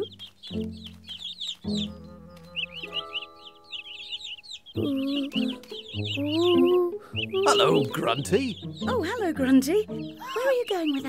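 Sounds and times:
cartoon chicks cheeping: 0:00.0 - 0:11.0
gentle background music: 0:00.0 - 0:11.0
pitched voice-like sound: 0:04.8 - 0:05.5, 0:06.2 - 0:07.9.

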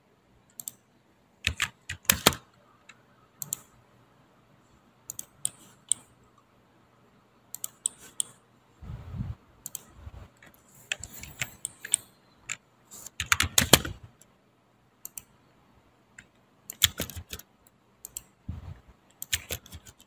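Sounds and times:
computer keyboard typing: 0:00.5 - 0:00.8, 0:01.4 - 0:02.4, 0:03.4 - 0:03.7, 0:05.1 - 0:06.1, 0:07.5 - 0:08.4, 0:09.6 - 0:14.1, 0:16.2 - 0:18.4, 0:19.2 - 0:20.0.

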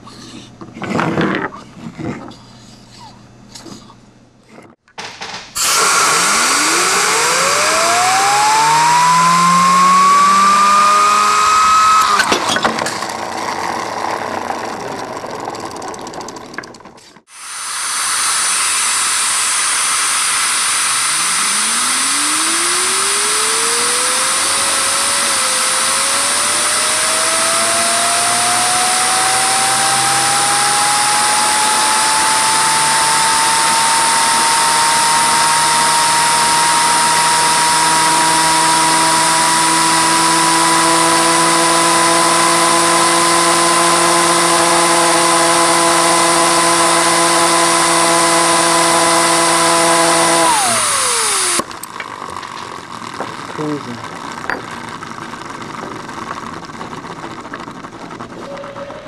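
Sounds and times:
turbine rotor whining: 0:05.6 - 0:59.0.

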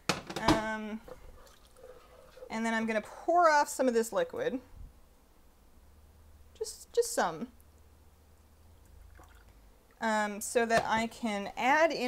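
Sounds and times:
liquid pouring into a cup: 0:01.4 - 0:02.4, 0:08.8 - 0:09.6.

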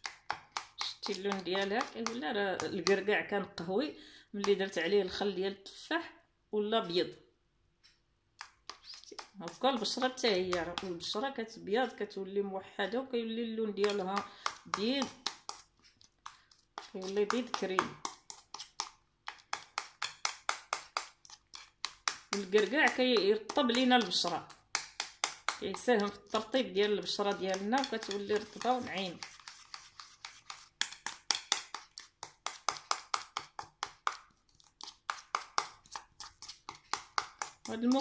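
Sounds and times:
spoon stirring thick paste: 0:00.0 - 0:05.6, 0:07.8 - 0:12.2, 0:12.8 - 0:38.0.

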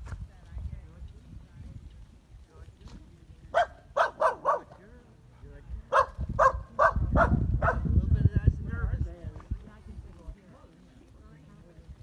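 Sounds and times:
dog barking: 0:03.5 - 0:04.8, 0:05.9 - 0:07.9.

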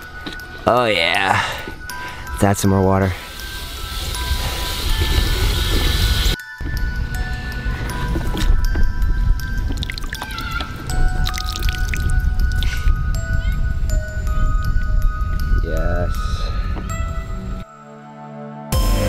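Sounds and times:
music with sustained notes: 0:00.0 - 0:19.0
hose spraying water into tub: 0:03.2 - 0:06.4.

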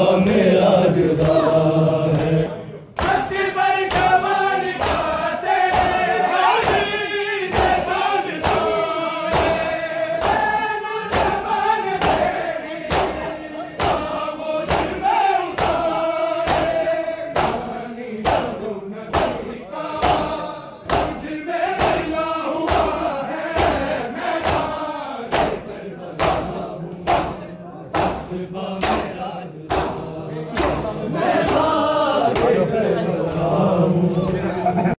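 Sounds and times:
men chanting in unison: 0:00.0 - 0:34.9
hands slapping chests: 0:03.0 - 0:27.4, 0:28.0 - 0:32.6.

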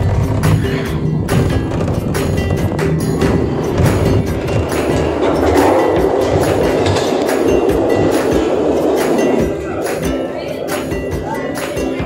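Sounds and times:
cable car machinery clattering: 0:00.0 - 0:10.7
background music: 0:00.0 - 0:12.0.

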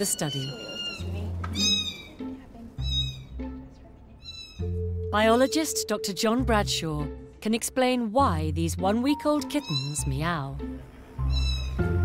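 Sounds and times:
kitten meowing: 0:00.0 - 0:02.2, 0:02.8 - 0:03.4, 0:04.2 - 0:04.8, 0:09.6 - 0:10.1, 0:11.3 - 0:11.8
background music: 0:00.0 - 0:12.0.

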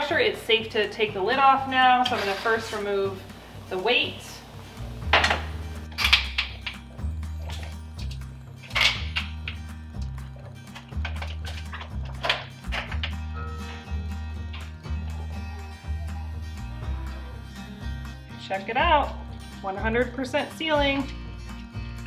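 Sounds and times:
background music with bass: 0:00.0 - 0:22.0.

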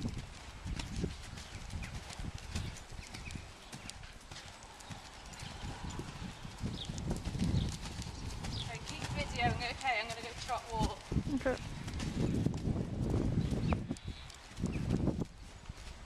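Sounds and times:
horse hoofbeats on sand: 0:00.0 - 0:16.0.

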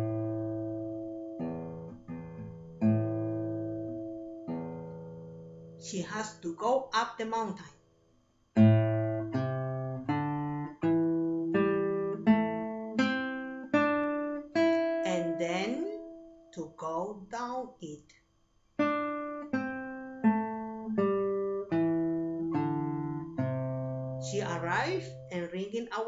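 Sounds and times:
acoustic guitar plucked chords: 0:00.0 - 0:07.7, 0:08.6 - 0:18.0, 0:18.8 - 0:26.0.

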